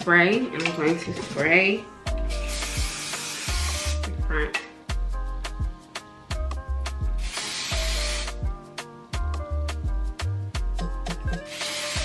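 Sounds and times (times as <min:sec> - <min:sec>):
background music with steady beat: 0:00.0 - 0:12.0
aerosol spray can bursts: 0:02.3 - 0:04.1, 0:07.2 - 0:08.4, 0:11.4 - 0:12.0.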